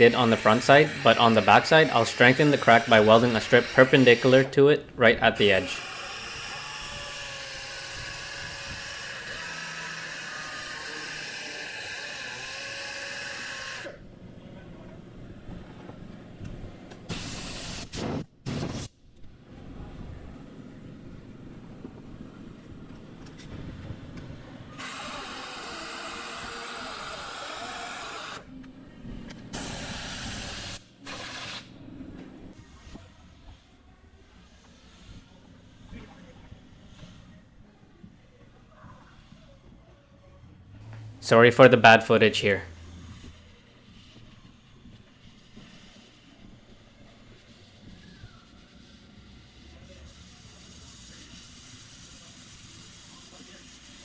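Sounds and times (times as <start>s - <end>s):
pneumatic die grinder grinding: 0.0s - 4.6s, 5.4s - 14.0s, 24.7s - 28.5s.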